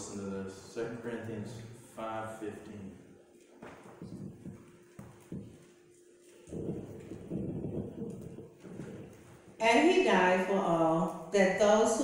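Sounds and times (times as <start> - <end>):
faint steady hum: 0.0 - 12.0
microphone handling thumps: 3.6 - 5.8, 6.4 - 9.6.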